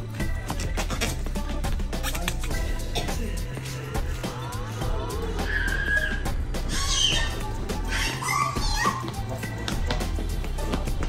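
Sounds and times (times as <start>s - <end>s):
background music: 0.0s - 11.0s
dog making high-pitched calls: 5.4s - 9.1s.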